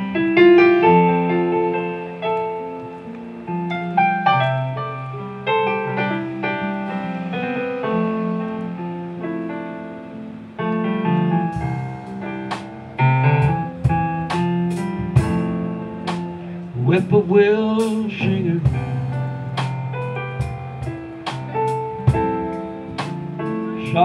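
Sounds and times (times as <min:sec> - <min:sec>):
keyboard playing piano: 0:00.0 - 0:24.0
bass guitar: 0:11.2 - 0:24.0
drums: 0:11.5 - 0:24.0.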